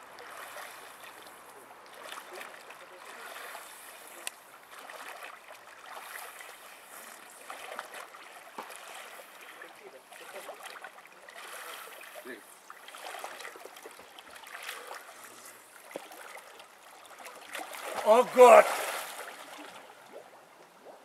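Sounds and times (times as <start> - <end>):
water splashing from swimming: 0.0 - 21.0.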